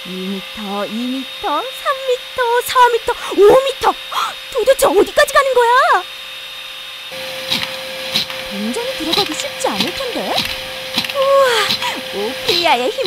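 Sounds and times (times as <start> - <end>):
vacuum cleaner motor whine: 0.0 - 13.0
excited voices exclaiming: 2.4 - 6.0, 11.1 - 13.0.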